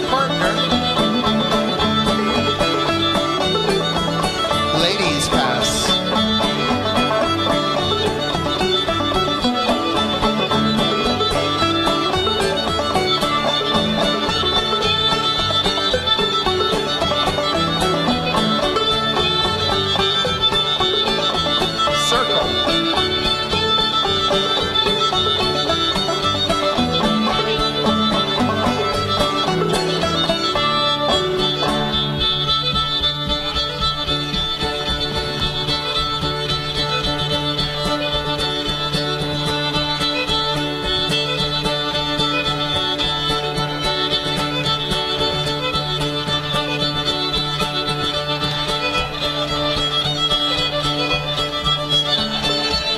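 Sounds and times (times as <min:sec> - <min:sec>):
fiddle melody: 0:00.0 - 0:52.9
plucked string accompaniment: 0:00.0 - 0:52.9.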